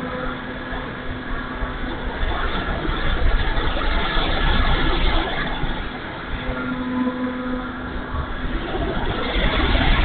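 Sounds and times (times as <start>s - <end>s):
electric motor and propeller hum: 0.0s - 10.0s
wind buffeting microphone: 0.0s - 10.0s.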